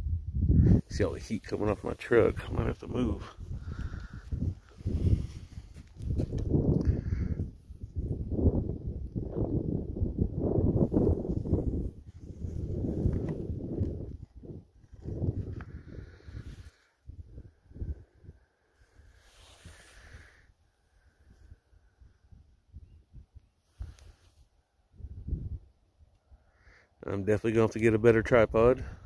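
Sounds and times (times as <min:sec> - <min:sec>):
wind buffeting microphone: 0:00.0 - 0:20.4, 0:24.9 - 0:25.8, 0:28.2 - 0:29.0.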